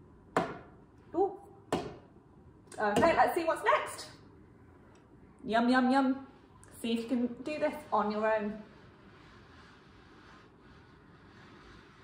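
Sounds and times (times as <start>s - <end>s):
woman's voice: 2.7s - 4.2s, 5.4s - 8.7s.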